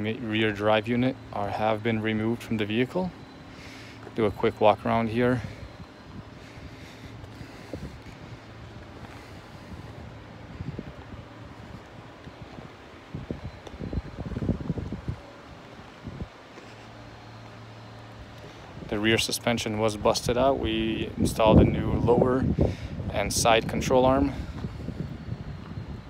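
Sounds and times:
low hum: 0.0 - 26.0
wind buffeting microphone: 4.2 - 26.0.

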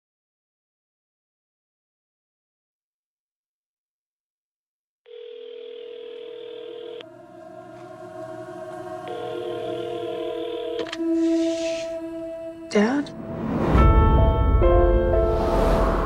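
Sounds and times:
telephone ringing tone: 5.1 - 7.2, 9.0 - 11.1
low music drone: 7.0 - 16.0.

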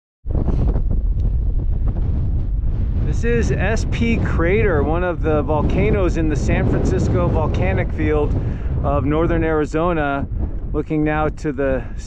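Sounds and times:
wind buffeting microphone: 0.2 - 12.0.

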